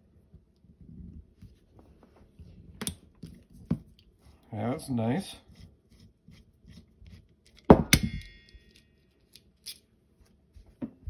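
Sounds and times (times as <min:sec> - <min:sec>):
screwdriver scraping: 0:05.5 - 0:07.7.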